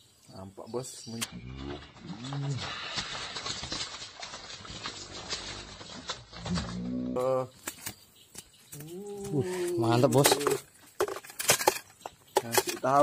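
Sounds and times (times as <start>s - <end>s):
crackling and rustling of leaves: 1.1s - 13.0s.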